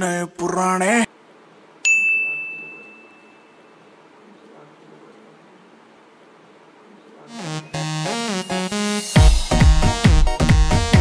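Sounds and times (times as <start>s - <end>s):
high bell-like ding: 1.9s - 3.9s.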